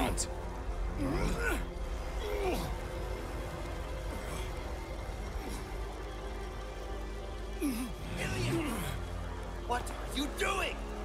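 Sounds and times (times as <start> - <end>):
cartoon soundtrack music: 0.0 - 11.0.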